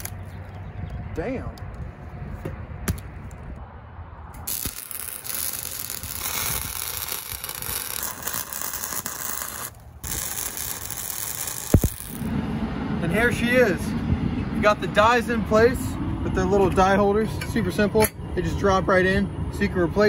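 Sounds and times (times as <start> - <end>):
welding arc crackling and hissing: 4.4 - 12.3.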